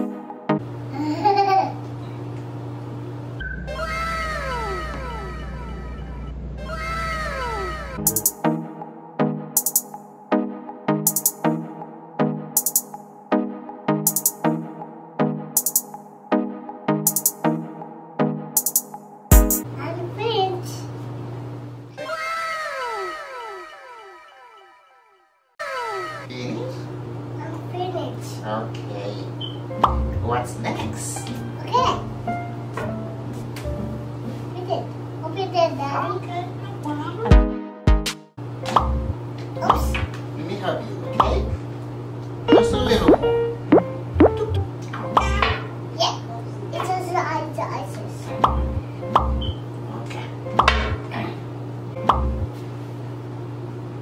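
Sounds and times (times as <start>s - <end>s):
child's voice: 19.8s - 20.9s, 27.4s - 28.3s, 31.6s - 32.1s, 34.6s - 37.2s, 45.2s - 48.3s
rising pop sound effect: 42.5s - 44.7s.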